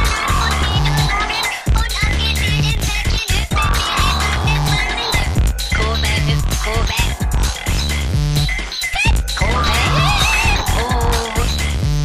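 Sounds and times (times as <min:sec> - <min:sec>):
electronic music with low beat: 0:00.0 - 0:12.0.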